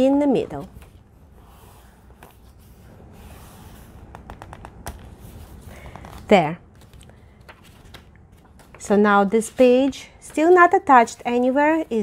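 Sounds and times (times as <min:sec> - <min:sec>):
paper rubbing and rustling: 0:00.7 - 0:12.0.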